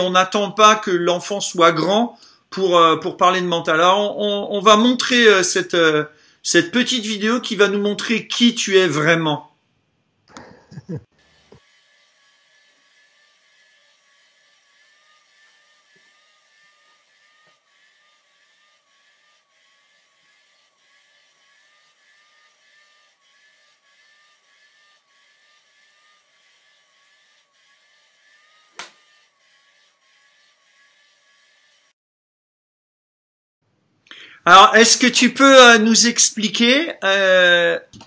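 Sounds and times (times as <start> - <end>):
faint mechanical whir: 11.2 - 31.9.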